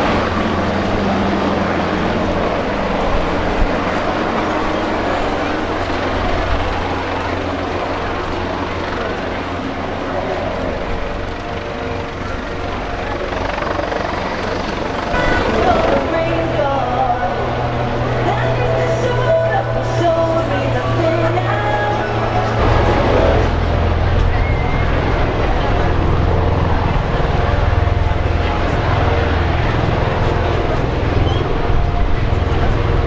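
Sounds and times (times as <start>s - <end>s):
helicopter flying by: 0.0s - 33.0s.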